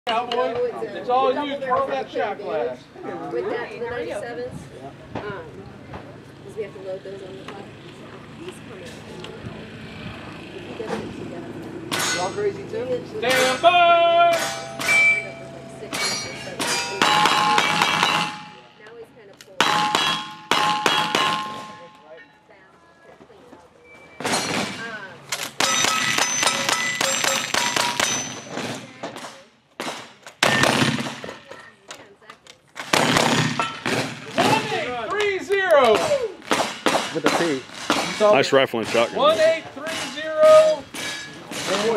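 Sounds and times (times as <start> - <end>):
steel targets ringing: 13.2 - 18.8, 19.6 - 22.4, 24.2 - 28.7, 38.0 - 41.9
rapid gunshots: 17.0 - 18.6, 29.8 - 31.4, 32.8 - 34.8, 36.4 - 38.2.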